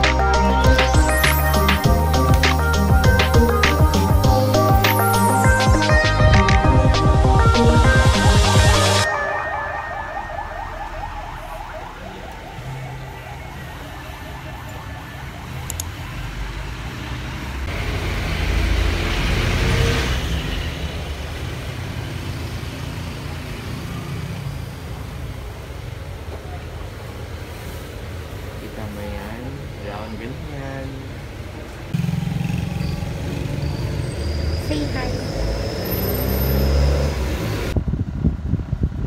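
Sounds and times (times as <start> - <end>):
rumble of road traffic: 0.0 - 8.3, 10.2 - 39.0
vehicle passing: 9.0 - 25.6, 31.2 - 37.8.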